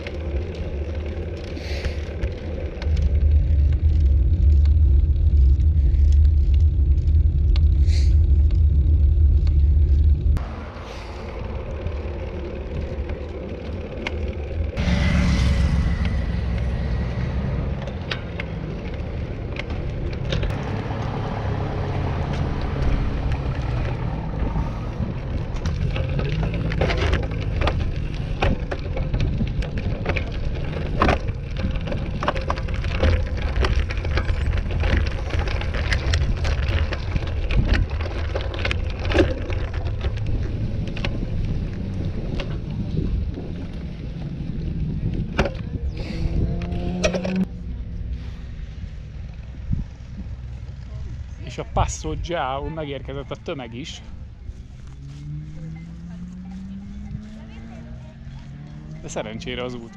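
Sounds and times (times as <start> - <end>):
bike tyres rolling over gravel: 0.0 - 15.0, 15.6 - 59.9
tyre and road noise: 0.0 - 59.9
wind rumbling on microphone: 0.0 - 59.9.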